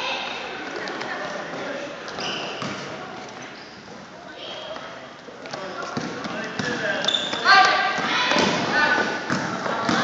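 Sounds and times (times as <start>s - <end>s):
voices calling out in gym: 0.0s - 10.0s
basketball bouncing on gym floor: 8.0s - 10.0s.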